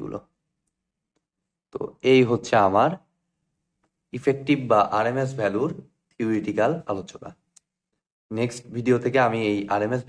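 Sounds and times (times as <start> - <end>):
man talking: 4.1 - 7.4, 8.3 - 10.0.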